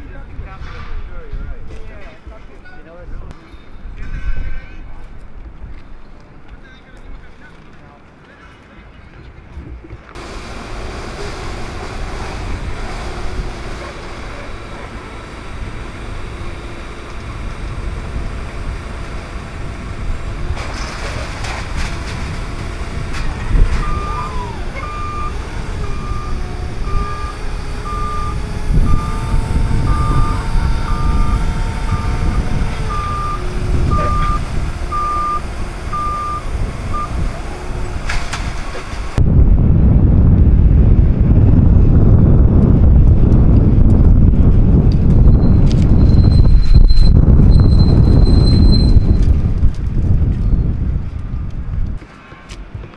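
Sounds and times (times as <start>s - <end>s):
low wind rumble on microphone: 0.0s - 7.4s, 8.7s - 52.9s
forklift engine hum: 10.1s - 52.0s
forklift reversing alarm beeping: 23.3s - 38.0s, 45.3s - 49.2s.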